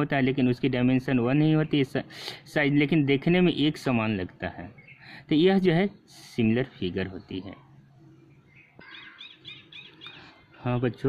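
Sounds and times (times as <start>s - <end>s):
bird chirping: 4.4s - 11.0s.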